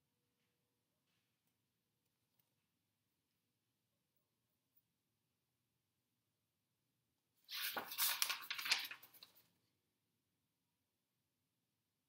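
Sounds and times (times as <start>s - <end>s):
book pages flipping: 7.5s - 9.4s.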